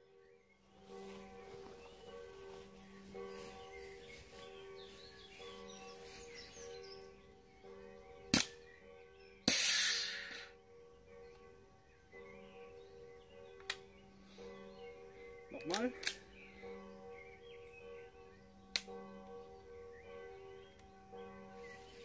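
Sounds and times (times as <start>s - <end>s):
airsoft pistol crack: 8.4s - 8.6s
loud hiss of gas: 9.5s - 10.4s.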